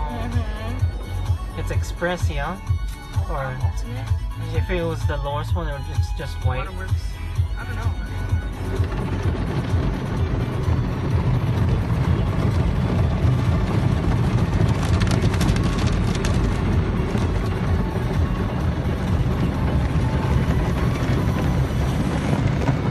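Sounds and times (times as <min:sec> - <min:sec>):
car wash water spraying: 0:00.0 - 0:22.9.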